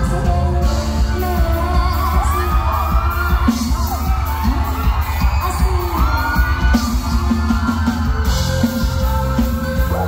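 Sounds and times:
woman singing into a microphone: 0.0s - 3.8s
live band playing: 0.0s - 10.0s.

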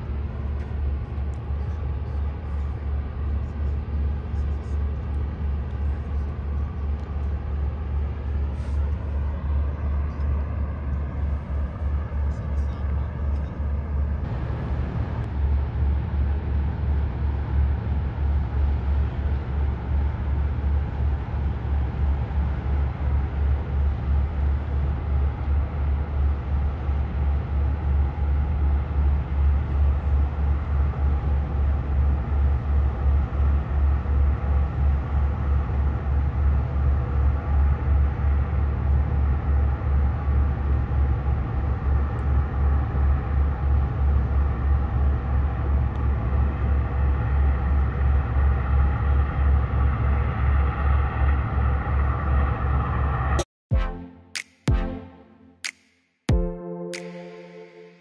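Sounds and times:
diesel engine throbbing: 0.0s - 54.1s
high steady drone: 56.3s - 58.0s.

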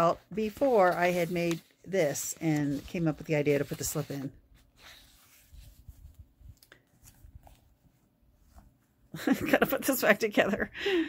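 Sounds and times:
paperback book being handled: 0.0s - 8.8s.

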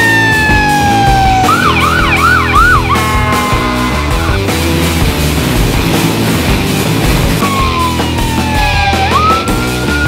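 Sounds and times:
emergency vehicle siren: 0.0s - 4.1s, 7.4s - 10.0s
rock music: 0.0s - 10.0s.

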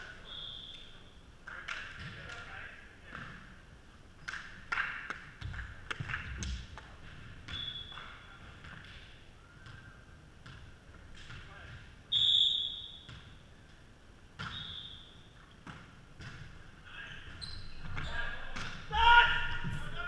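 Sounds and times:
volleyball hits and thuds: 15.6s - 16.6s
players' voices: 17.9s - 20.0s.

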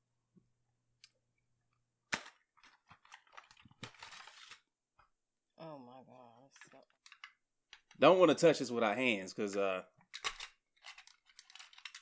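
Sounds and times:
packaging rustle: 2.6s - 4.6s
packaging clicks: 10.1s - 12.0s
packaging snapping: 10.2s - 12.0s.

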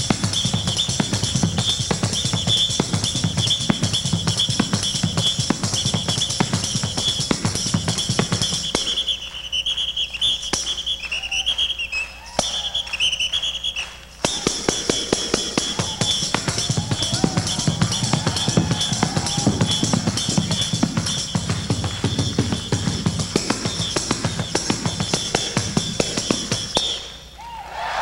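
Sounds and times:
tambourine played by hand: 0.0s - 27.2s.

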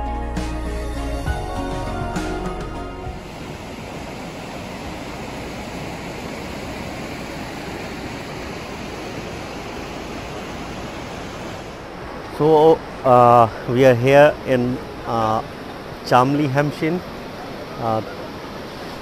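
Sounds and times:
river rushing over rocks: 3.2s - 19.0s.

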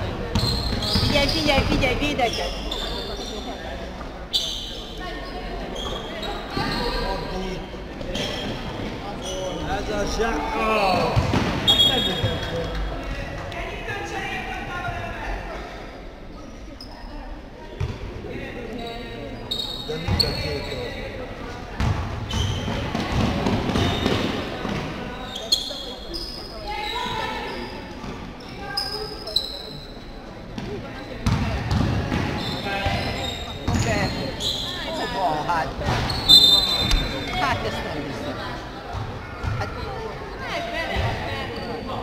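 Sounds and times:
basketball bouncing on court: 0.3s - 2.0s, 21.8s - 24.9s, 30.6s - 34.2s, 38.9s - 39.8s
shoes squeaking on floor: 0.3s - 9.8s, 11.0s - 12.7s, 18.8s - 21.2s, 22.2s - 38.0s, 38.9s - 42.0s.

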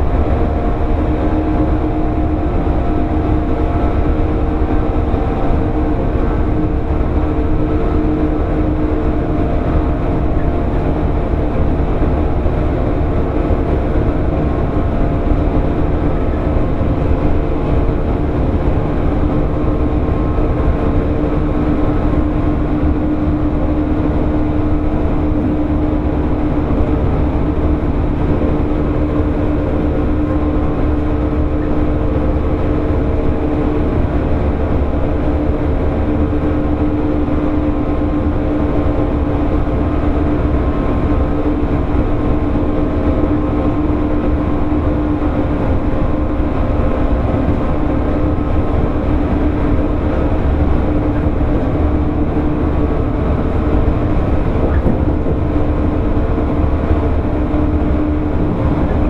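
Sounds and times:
electric train rumble and hum: 0.0s - 59.0s.

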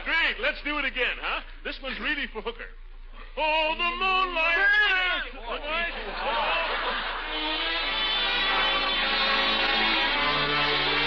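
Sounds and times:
music: 7.0s - 11.0s.

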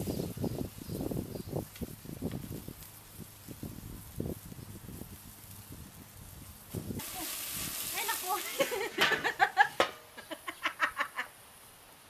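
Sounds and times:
woman laughing: 8.4s - 11.4s.

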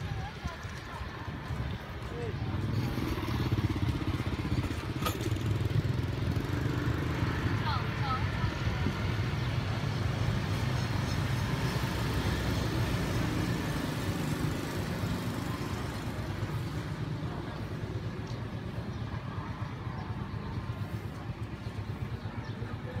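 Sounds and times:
faint voices: 0.0s - 6.4s, 14.6s - 23.0s
vehicle engines humming: 0.0s - 23.0s.

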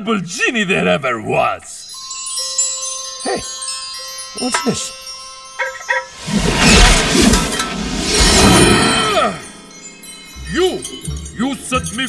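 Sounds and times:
wind chimes shimmering: 1.8s - 12.0s.

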